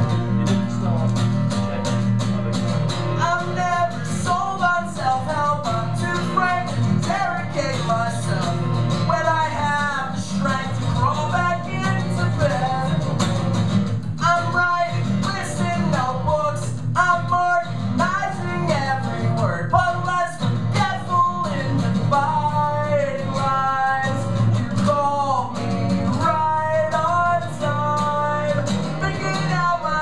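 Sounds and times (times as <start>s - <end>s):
man singing: 0.0s - 13.5s, 14.2s - 30.0s
acoustic guitar strumming: 0.0s - 30.0s.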